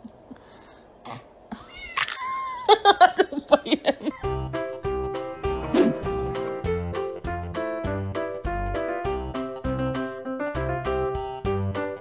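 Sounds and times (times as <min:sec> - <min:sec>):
cat meowing: 0:01.6 - 0:02.2.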